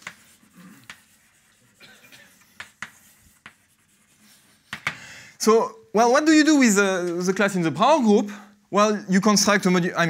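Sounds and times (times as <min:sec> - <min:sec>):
chalk scratching on blackboard: 0:00.0 - 0:05.0
chalk tapping on board: 0:00.0 - 0:05.0.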